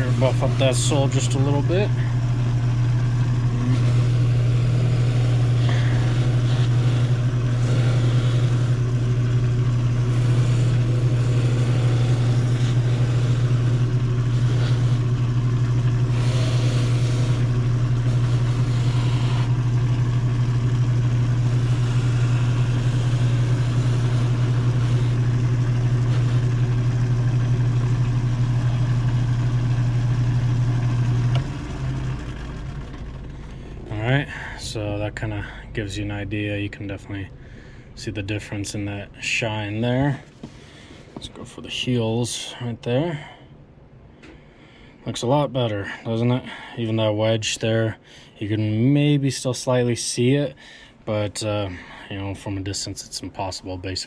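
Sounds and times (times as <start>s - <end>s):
finishing machine humming: 0.0s - 34.0s.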